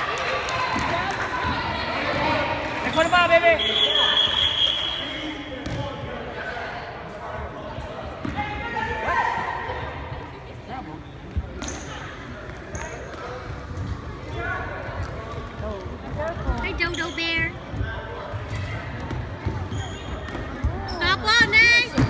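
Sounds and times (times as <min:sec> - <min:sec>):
spectators' voices: 0:00.0 - 0:22.0
referee's whistle blast: 0:02.9 - 0:05.5.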